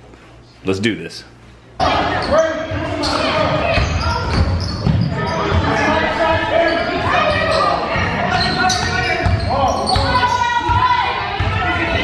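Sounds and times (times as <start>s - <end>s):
players' voices echoing: 0.6s - 12.0s
basketballs dribbling on hardwood: 2.7s - 12.0s.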